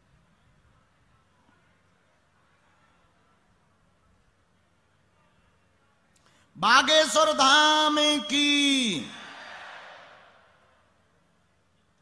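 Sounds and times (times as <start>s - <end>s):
man calling into microphone: 6.5s - 9.2s.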